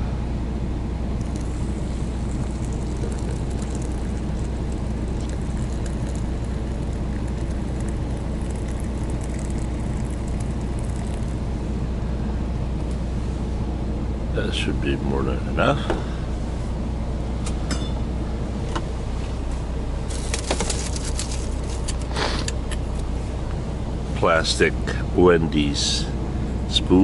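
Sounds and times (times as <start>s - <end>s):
water pouring into glass: 1.2s - 11.4s.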